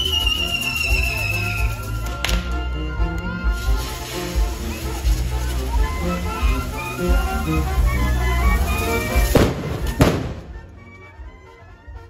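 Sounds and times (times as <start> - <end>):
band music: 0.0 - 12.0
firecracker bangs: 3.5 - 10.8.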